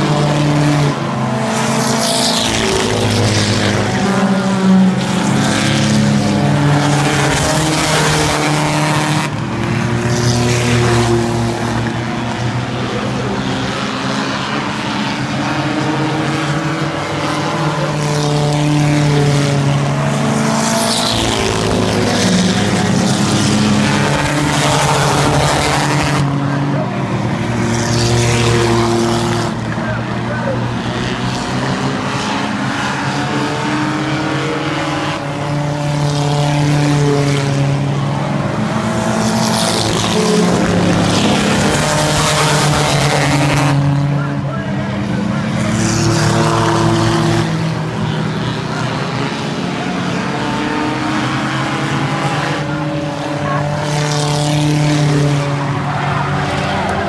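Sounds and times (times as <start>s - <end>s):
stock car engines racing: 0.0s - 57.0s.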